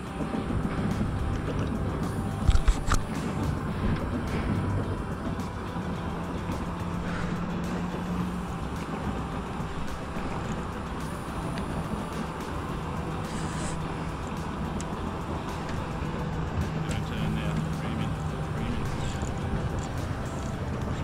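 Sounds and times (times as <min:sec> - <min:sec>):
outboard motor running: 0:00.0 - 0:21.0
water noise: 0:00.0 - 0:21.0
wind: 0:00.0 - 0:21.0.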